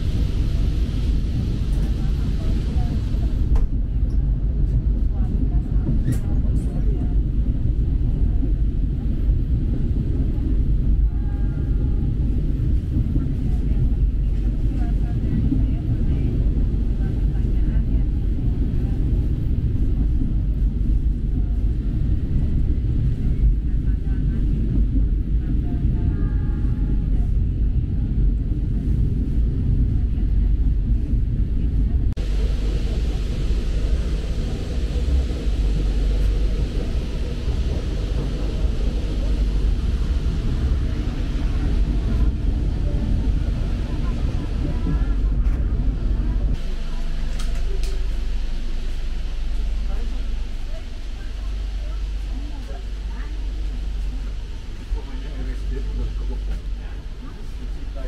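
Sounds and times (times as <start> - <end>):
train rumbling on track: 0.0 - 58.0.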